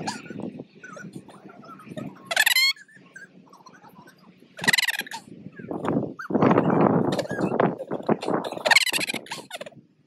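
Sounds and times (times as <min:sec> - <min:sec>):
small dog yelping barks: 0:00.0 - 0:07.7, 0:08.5 - 0:09.7.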